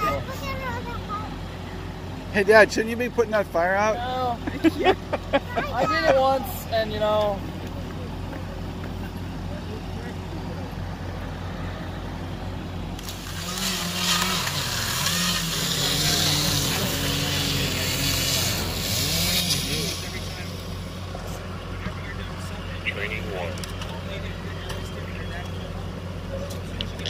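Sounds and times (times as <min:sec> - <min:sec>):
voices: 0:00.0 - 0:27.0
fire engine pump idling: 0:00.1 - 0:13.4, 0:20.0 - 0:27.0
fire hose spraying water: 0:13.0 - 0:21.3.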